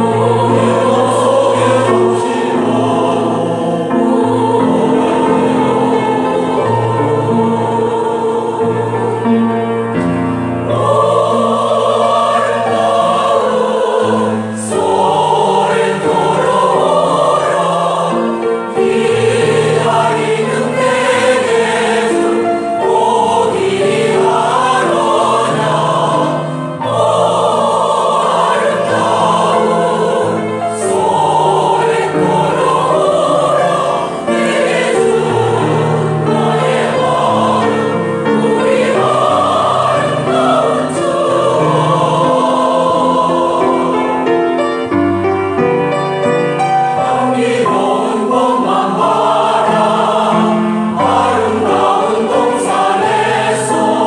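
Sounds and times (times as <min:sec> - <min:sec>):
choir singing in harmony: 0:00.0 - 0:54.0.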